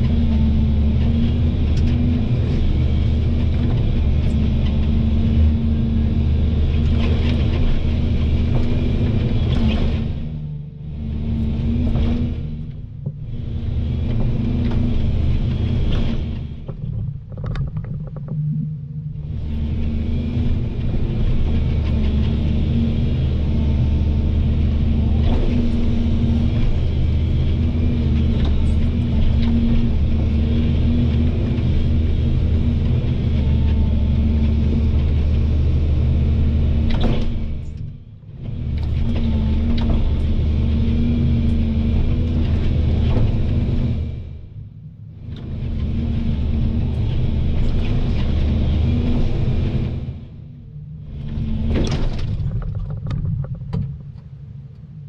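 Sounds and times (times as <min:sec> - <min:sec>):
excavator diesel engine running: 0:00.0 - 0:44.5, 0:45.1 - 0:54.6.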